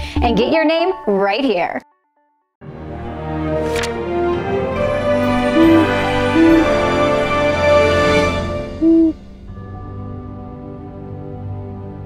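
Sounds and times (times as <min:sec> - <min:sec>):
closing music: 0:02.6 - 0:12.0
quiet music bed: 0:02.7 - 0:12.0
owl hoot: 0:05.6 - 0:06.7, 0:08.8 - 0:09.2.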